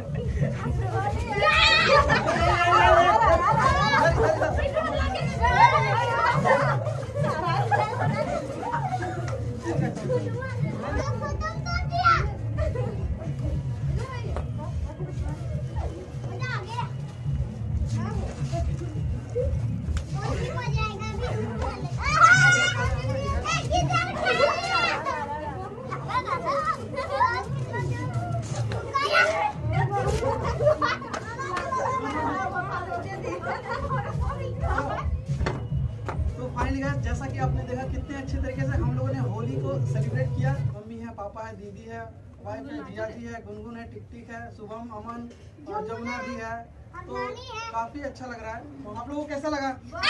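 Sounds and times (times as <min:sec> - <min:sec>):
adults talking: 0:00.0 - 0:50.0
family chatter: 0:00.0 - 0:50.0
children shouting: 0:01.1 - 0:09.4, 0:20.2 - 0:35.6.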